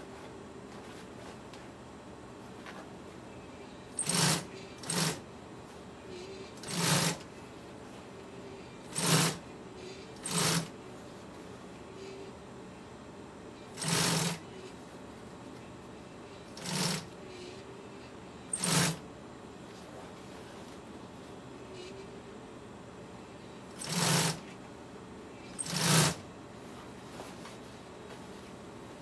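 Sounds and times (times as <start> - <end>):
industrial sewing machine stitching: 4.0 - 5.2, 6.6 - 7.3, 8.9 - 9.4, 10.2 - 10.7, 13.7 - 14.4, 16.6 - 17.2, 18.5 - 19.0, 23.7 - 24.5, 25.6 - 26.2.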